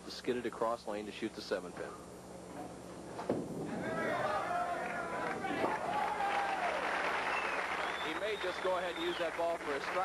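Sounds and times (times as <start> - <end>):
audience clapping: 4.4 - 10.0.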